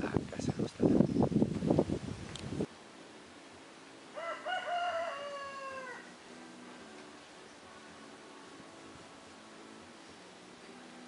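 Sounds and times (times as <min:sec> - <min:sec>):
rooster crowing: 0:04.1 - 0:06.2.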